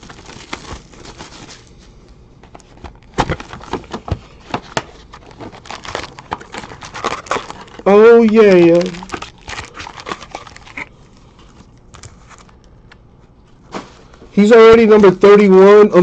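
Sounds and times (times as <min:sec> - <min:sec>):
shrink wrap crinkling and tearing: 0:00.0 - 0:01.8, 0:02.6 - 0:12.8
cardboard handling: 0:02.4 - 0:12.6.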